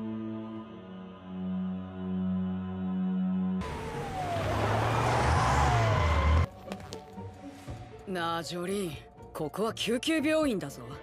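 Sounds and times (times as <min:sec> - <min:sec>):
siren gliding down in pitch: 0:03.6 - 0:06.5
ambulance engine and road noise: 0:03.6 - 0:07.7.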